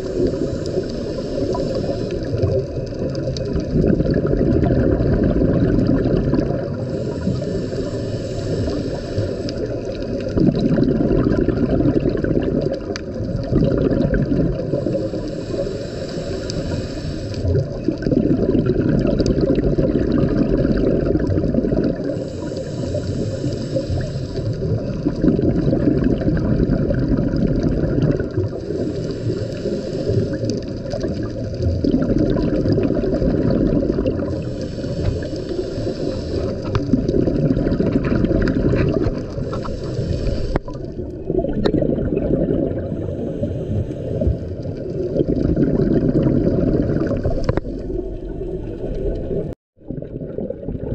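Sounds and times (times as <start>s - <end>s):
regulator inhale hiss: 0.0s - 3.2s, 6.7s - 10.3s, 14.6s - 17.6s, 21.9s - 25.2s, 28.3s - 31.6s, 34.1s - 36.9s, 38.8s - 41.0s, 42.8s - 44.9s
exhaled bubbles rushing: 0.0s - 8.0s, 8.6s - 15.6s, 17.4s - 50.9s.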